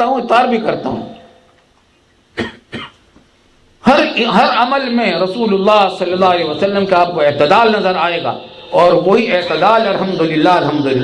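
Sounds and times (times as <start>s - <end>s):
man coughing: 2.3s - 3.1s.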